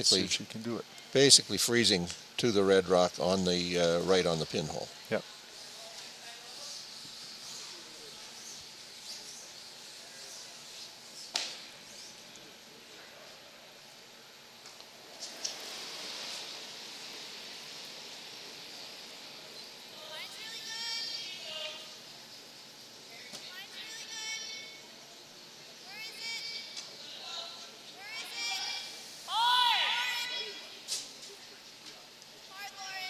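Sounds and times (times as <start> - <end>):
women shouting at a distance: 20.0 - 21.9, 23.5 - 24.8, 25.8 - 30.7, 32.5 - 33.0.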